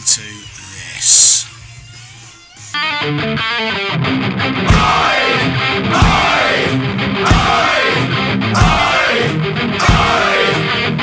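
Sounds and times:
distorted electric guitar riff: 0.0 - 11.0
drums: 4.6 - 11.0.

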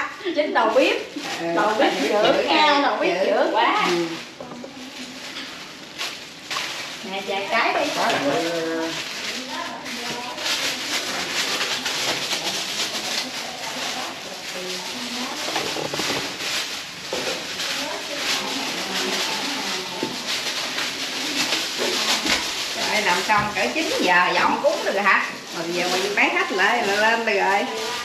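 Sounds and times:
indistinct chatter: 0.0 - 28.0.

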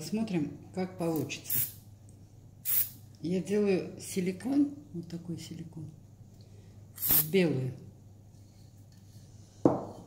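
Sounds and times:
object knocking on tabletop: 9.6 - 10.0.

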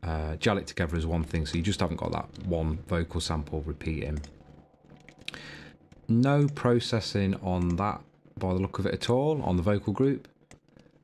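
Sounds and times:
keyboard and mouse clicks: 1.2 - 3.3, 4.0 - 8.7, 9.6 - 11.0.

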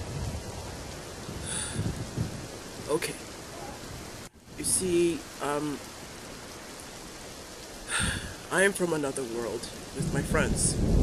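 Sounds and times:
steady rain falling: 0.0 - 11.0.

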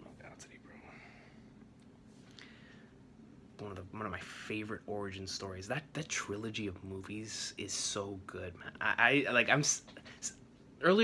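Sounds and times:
man whispering: 0.0 - 1.2.

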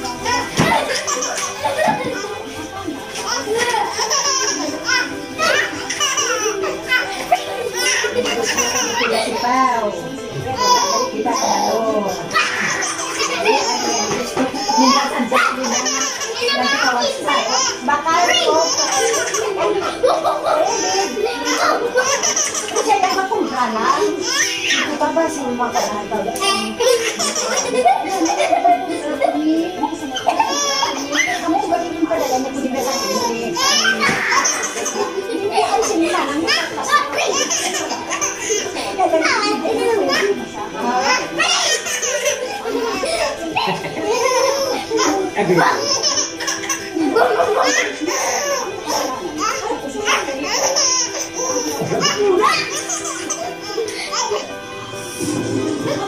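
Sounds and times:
baby laughing and babbling: 0.0 - 9.5, 10.5 - 23.2, 24.0 - 25.0, 30.0 - 54.6
people talking: 0.0 - 56.0.

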